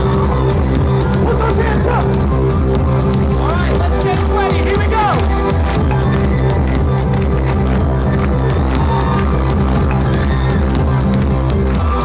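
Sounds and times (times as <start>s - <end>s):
heavy repeating bass notes: 0.0s - 12.0s
steady drum beat: 0.0s - 12.0s.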